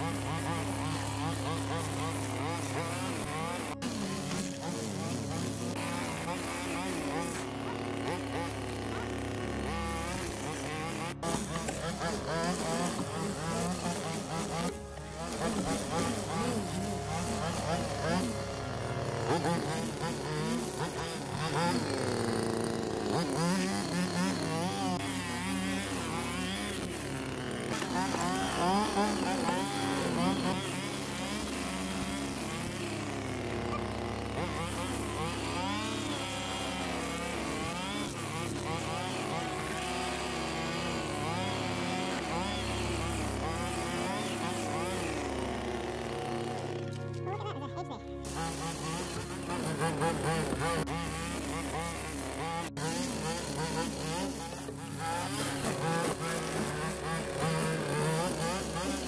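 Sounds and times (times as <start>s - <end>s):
string trimmer engine revving: 0.0s - 59.0s.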